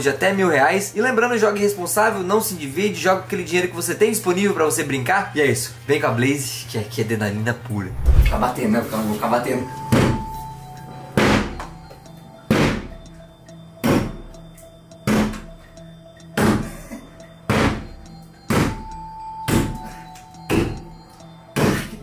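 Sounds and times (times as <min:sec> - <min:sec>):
background music: 0:07.8 - 0:22.0.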